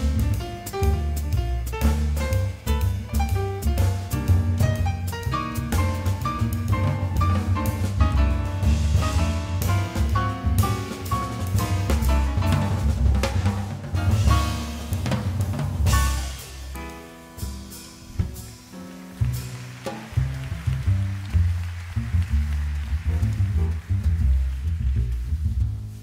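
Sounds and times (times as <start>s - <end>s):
drum and cymbal strokes: 0.0s - 18.8s
upright bass walking notes: 0.0s - 19.6s, 22.3s - 26.0s
piano chords: 0.0s - 24.8s.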